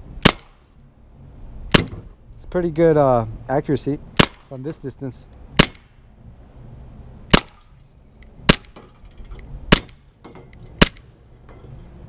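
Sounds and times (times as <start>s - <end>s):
airsoft pistol shots: 0.2s - 0.6s, 1.7s - 2.1s, 4.2s - 4.5s, 5.6s - 5.9s, 7.3s - 7.7s, 8.4s - 8.8s, 9.7s - 10.1s, 10.8s - 11.1s.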